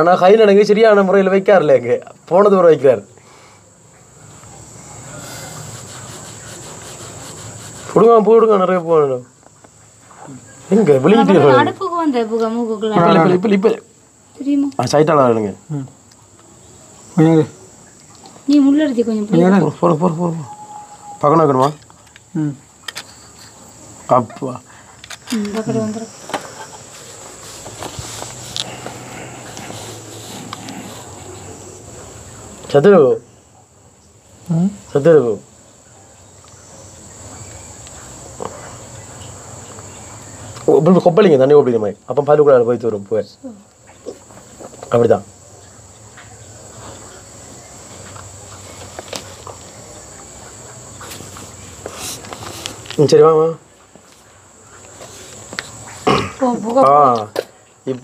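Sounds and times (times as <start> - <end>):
crickets trilling: 0.0 - 58.0.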